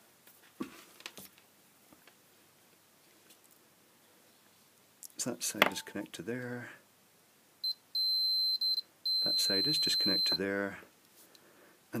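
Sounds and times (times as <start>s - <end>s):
multimeter beeping: 7.6s - 10.4s.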